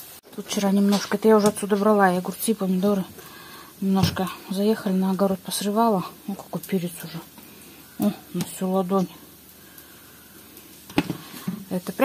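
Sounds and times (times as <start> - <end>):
fritters sizzling in a pan: 0.0 - 12.0.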